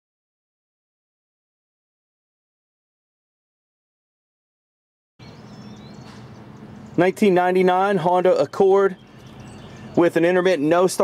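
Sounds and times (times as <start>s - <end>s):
high bird chirp: 5.2s - 11.0s
low steady hum: 5.2s - 11.0s.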